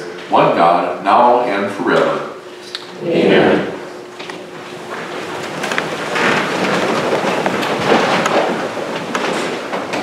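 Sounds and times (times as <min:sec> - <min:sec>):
congregation rustling and shuffling: 0:00.0 - 0:10.0.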